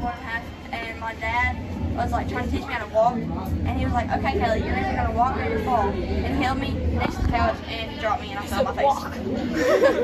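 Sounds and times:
girl talking: 0:00.0 - 0:09.4
low steady hum: 0:00.0 - 0:10.0.

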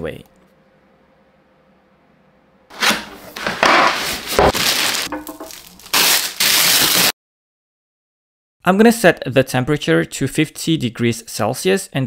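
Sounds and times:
plastic bag crinkling: 0:04.0 - 0:07.1.

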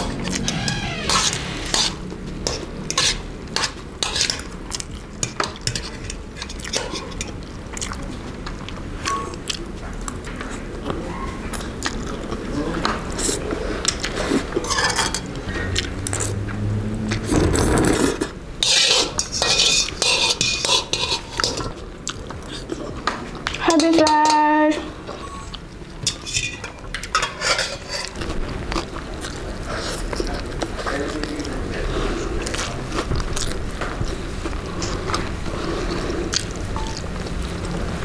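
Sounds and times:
cutlery scraping a metal pan: 0:01.7 - 0:04.4, 0:14.6 - 0:15.3, 0:18.2 - 0:21.7, 0:26.1 - 0:28.2.

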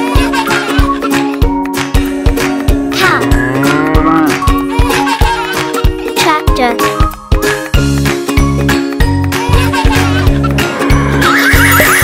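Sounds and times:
background music with steady beat: 0:00.0 - 0:12.0
cow mooing: 0:03.2 - 0:04.4.

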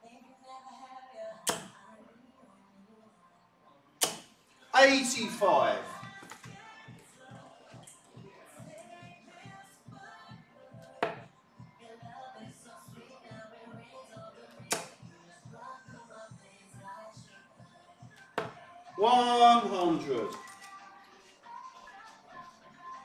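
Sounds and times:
faint background music: 0:00.0 - 0:23.0
darts thudding into dartboard: 0:01.5 - 0:01.8, 0:04.0 - 0:04.4, 0:11.0 - 0:11.3, 0:14.7 - 0:15.0, 0:18.3 - 0:18.6.

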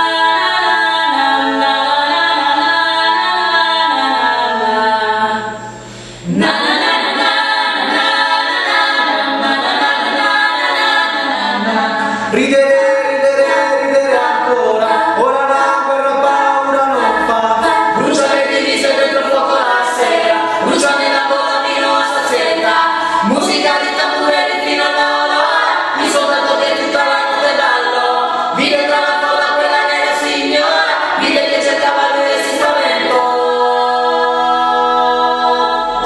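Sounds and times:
a cappella group singing: 0:00.0 - 0:36.0.

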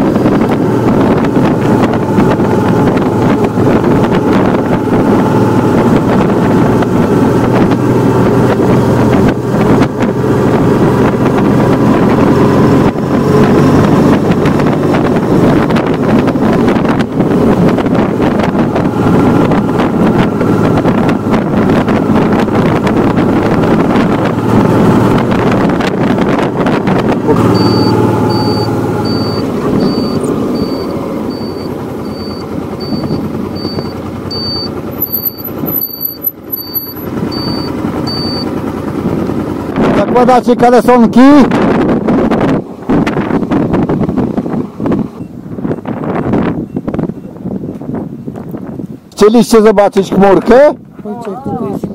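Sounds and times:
motorcycle engine running: 0:00.0 - 0:49.1
wind rush on microphone: 0:00.0 - 0:51.9
short high electronic beep: 0:27.5 - 0:38.5.

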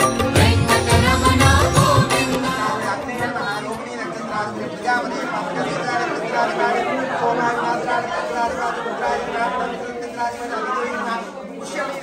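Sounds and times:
people talking in echoing room: 0:00.0 - 0:12.0.

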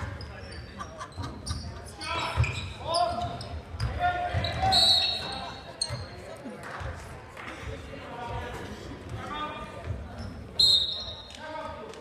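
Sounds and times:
voices of players and crowd: 0:00.0 - 0:12.0.

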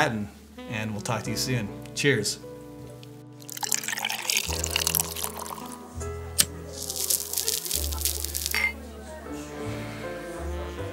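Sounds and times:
background music with deep bass: 0:00.0 - 0:10.9
liquor poured onto ice: 0:03.4 - 0:05.8, 0:06.4 - 0:08.8.

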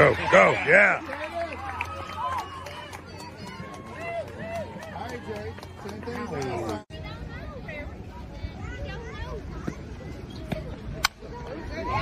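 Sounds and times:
spectators calling out and chattering: 0:00.0 - 0:12.0.

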